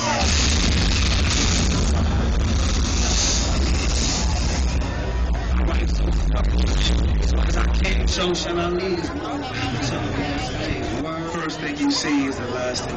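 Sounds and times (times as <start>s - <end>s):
loud hip-hop music: 0.0s - 8.6s.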